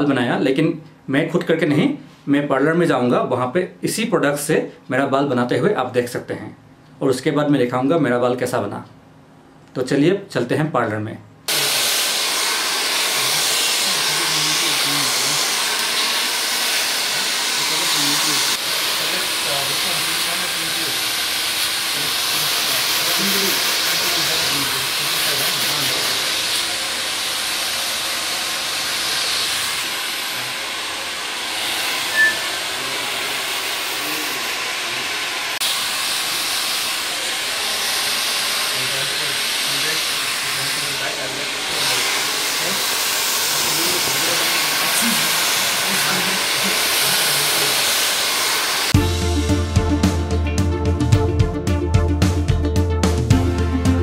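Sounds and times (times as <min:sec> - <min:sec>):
hair dryer blowing air: 0:11.5 - 0:49.6.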